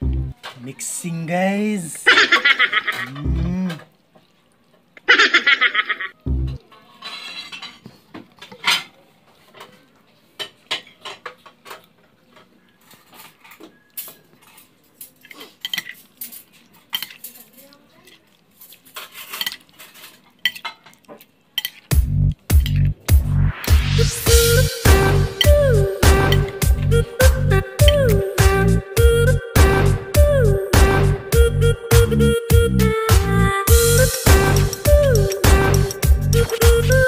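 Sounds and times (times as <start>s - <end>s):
metal spoon clinking on plate: 13.0s - 17.5s, 19.0s - 21.0s, 21.6s - 21.9s
music with steady beat: 21.9s - 37.0s.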